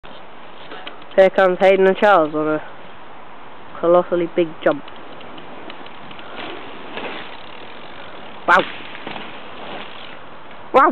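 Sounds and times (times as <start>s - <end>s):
bike rolling over dirt: 4.6s - 10.7s.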